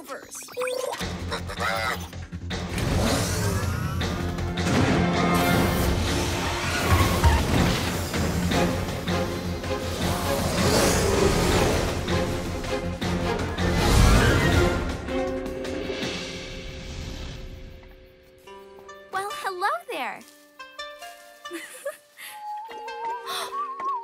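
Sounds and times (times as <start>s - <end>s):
upbeat cartoon action music: 0.0s - 17.7s.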